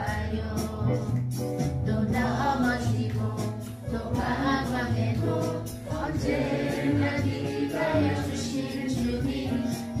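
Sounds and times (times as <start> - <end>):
gospel singing with instruments: 0.0 - 10.0.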